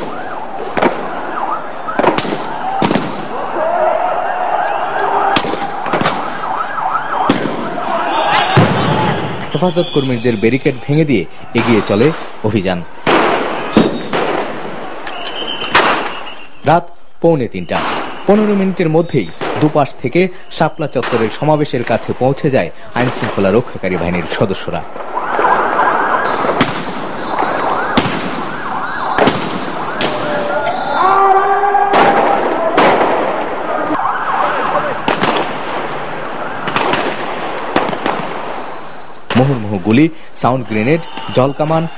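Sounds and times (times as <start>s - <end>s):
gunshots with echoing tail: 0.0s - 3.4s, 5.4s - 6.5s, 7.2s - 7.9s, 13.0s - 14.9s, 25.3s - 30.6s, 31.9s - 33.6s, 35.0s - 35.9s, 36.6s - 38.8s
sirens wailing: 0.0s - 10.6s, 24.5s - 37.8s.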